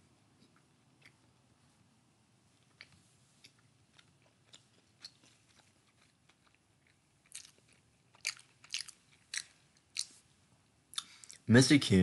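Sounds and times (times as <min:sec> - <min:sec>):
chewing and crunching food: 0:00.3 - 0:01.4, 0:02.6 - 0:10.3, 0:10.9 - 0:11.5.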